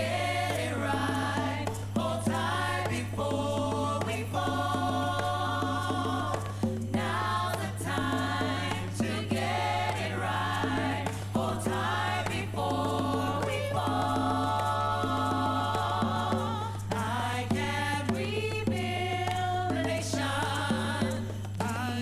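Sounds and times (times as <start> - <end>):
gospel choir singing on vinyl: 0.0 - 22.0.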